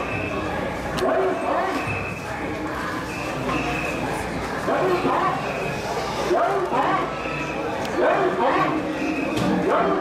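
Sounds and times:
crowd hubbub: 0:00.0 - 0:10.0.

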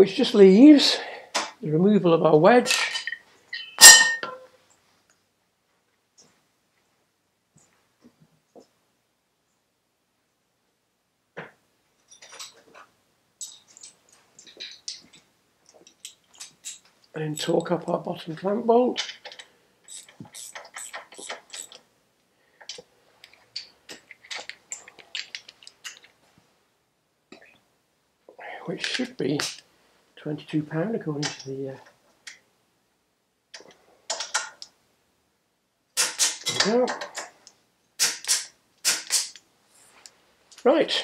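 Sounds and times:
torque wrench clicking: 0:19.3 - 0:21.8, 0:38.0 - 0:39.4
socket ratchet clicking: 0:19.9 - 0:21.8.

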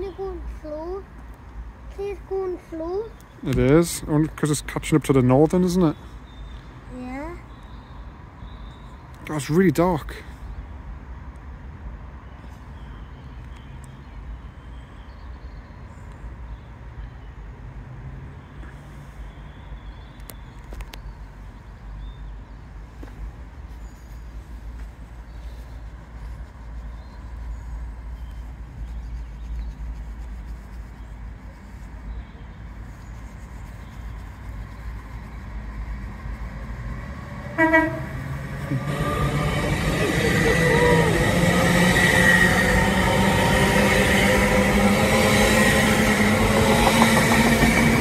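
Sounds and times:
train rumbling: 0:22.7 - 0:48.0.

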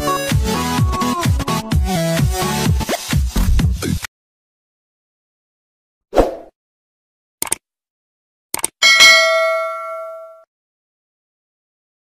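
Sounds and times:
quick double clicks: 0:07.4 - 0:07.6, 0:08.5 - 0:08.8
bell ding: 0:08.8 - 0:10.5.

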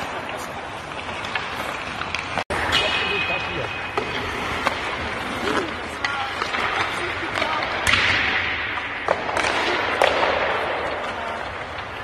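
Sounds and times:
steady hall noise: 0:00.0 - 0:12.0.

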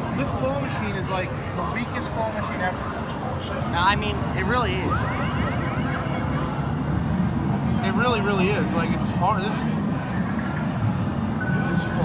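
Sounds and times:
low din of arcade floor: 0:00.0 - 0:12.0
rising siren-like chirps: 0:04.8 - 0:06.6.

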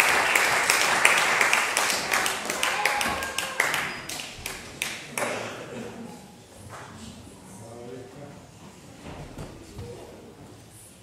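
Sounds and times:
scattered hand claps: 0:00.0 - 0:05.4.

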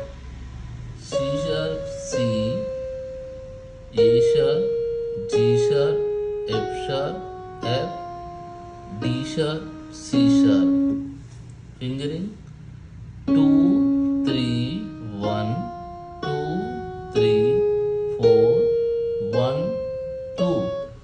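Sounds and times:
electronic keyboard playing a scale: 0:00.0 - 0:12.3, 0:13.2 - 0:21.0.

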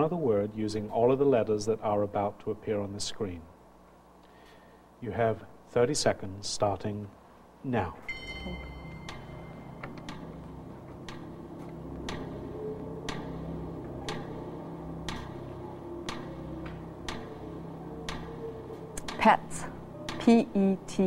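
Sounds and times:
low synthesizer drone: 0:08.0 - 0:21.0
clock-like ticking: 0:08.7 - 0:21.0.

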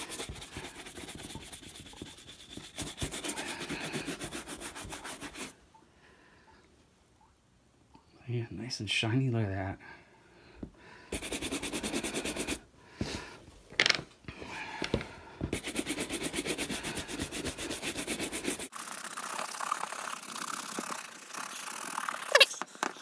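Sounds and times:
brush strokes on leather shoe: 0:11.1 - 0:12.6, 0:15.5 - 0:22.3.

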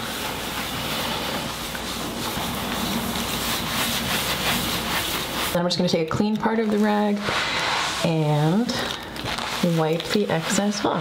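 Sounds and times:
towel scrubbing a countertop: 0:00.0 - 0:11.0.

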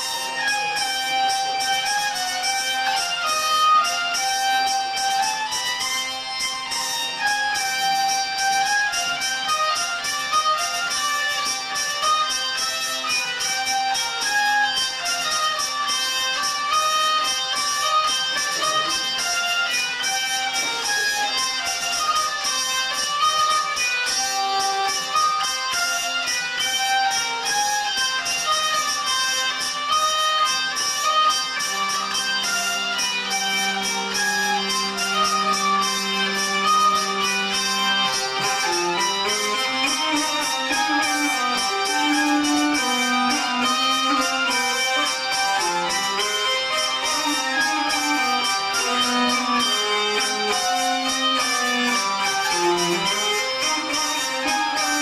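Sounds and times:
hurdy-gurdies playing a fast tune: 0:00.0 - 0:55.0.

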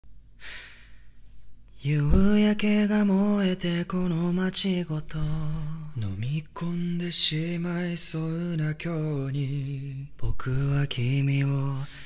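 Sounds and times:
man singing a cappella: 0:01.8 - 0:12.0.

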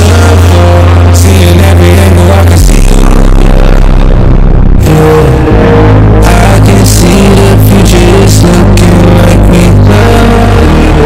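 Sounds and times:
distorted bass-boosted hip-hop beat: 0:00.0 - 0:11.0.

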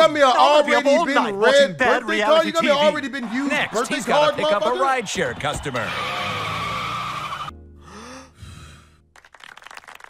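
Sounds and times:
car tires squealing: 0:05.4 - 0:07.5.

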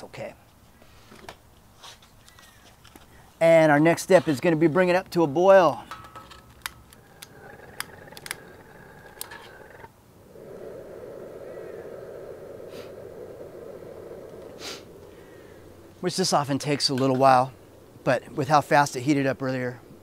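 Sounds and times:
burner flame rushing: 0:07.0 - 0:19.1.

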